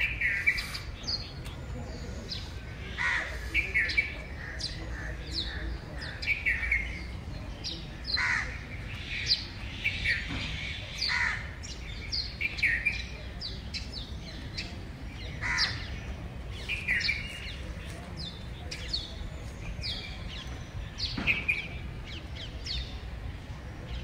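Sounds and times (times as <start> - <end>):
harsh bird calls: 0.0 - 24.0
high chirping birds: 0.0 - 24.0.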